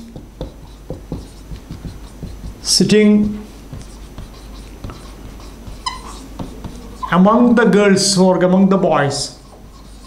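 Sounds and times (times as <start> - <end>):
marker squeak: 0.0 - 7.6, 9.4 - 10.0
marker scratching on whiteboard: 0.0 - 10.0.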